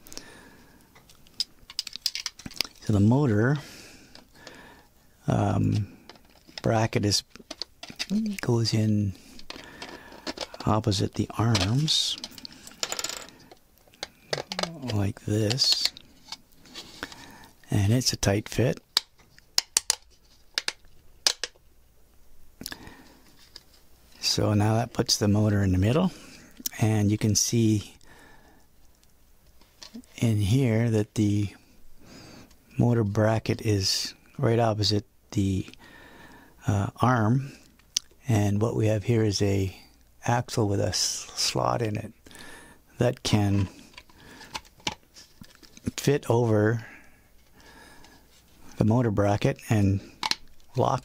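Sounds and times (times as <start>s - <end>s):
plastic parts clicking: 1.0s - 2.8s, 7.4s - 8.2s, 9.4s - 10.8s, 11.4s - 16.4s, 18.9s - 21.6s, 50.2s - 50.7s
plastic parts scraping: 1.0s - 2.9s, 5.6s - 8.2s, 9.3s - 17.3s, 43.2s - 46.0s.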